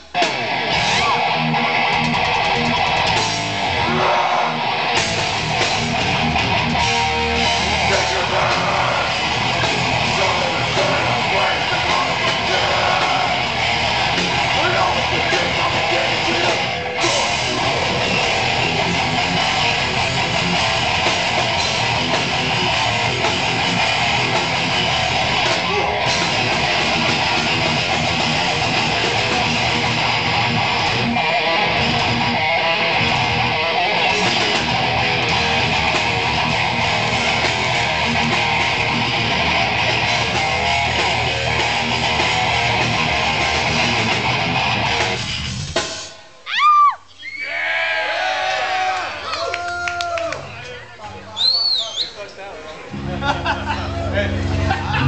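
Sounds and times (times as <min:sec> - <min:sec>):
live rock band playing: 0:00.0 - 0:46.3, 0:52.9 - 0:55.0.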